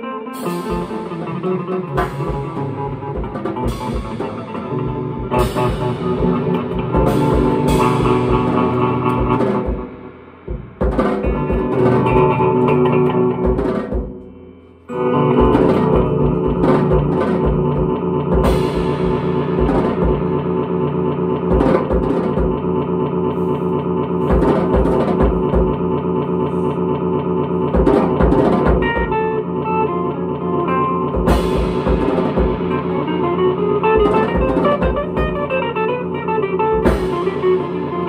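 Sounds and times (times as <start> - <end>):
ringing electric guitar: 0.0 - 38.0
cymbal crashes: 0.4 - 12.6, 18.4 - 22.7, 31.3 - 38.0
kick drum: 9.2 - 12.3, 13.4 - 14.3, 21.5 - 22.8, 24.3 - 25.9.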